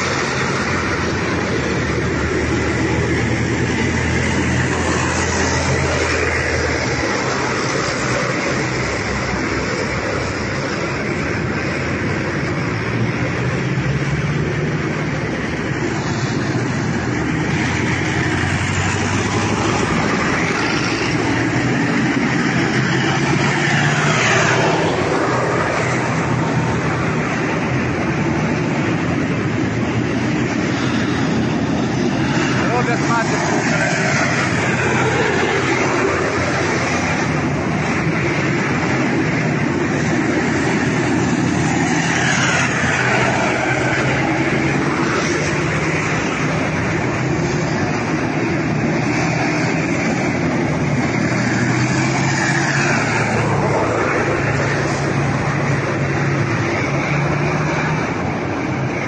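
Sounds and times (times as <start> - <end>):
armoured vehicles driving past: 0.0 - 59.0.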